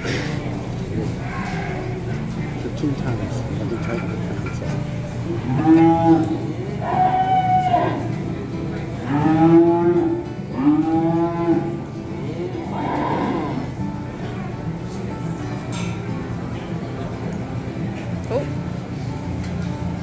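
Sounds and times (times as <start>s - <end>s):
cattle mooing: 1.2s - 2.2s, 5.4s - 8.2s, 9.0s - 13.8s.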